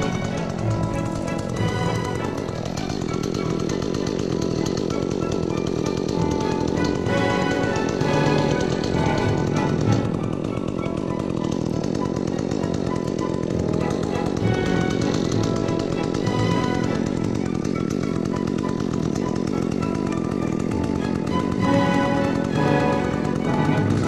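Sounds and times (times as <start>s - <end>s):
background music: 0.0s - 24.0s
chainsaw cutting wood: 0.0s - 24.0s.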